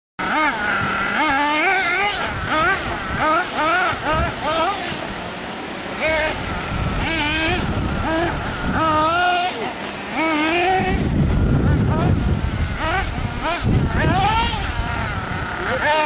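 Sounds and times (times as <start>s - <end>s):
small glow engine revving: 0.2s - 16.0s.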